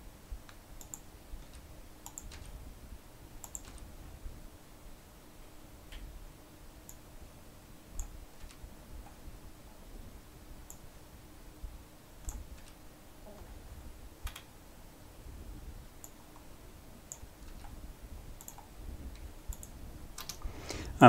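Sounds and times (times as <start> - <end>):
computer mouse and keyboard clicks: 0.4 - 2.6, 3.4 - 3.9, 8.0 - 9.2, 12.2 - 12.8, 14.2 - 14.5, 17.1 - 17.8, 18.4 - 20.5.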